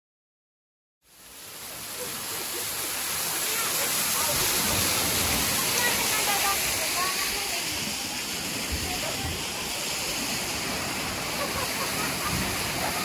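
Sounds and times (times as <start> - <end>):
waterfall splashing onto stones: 1.1 - 13.0
faint voices of people: 1.9 - 10.1.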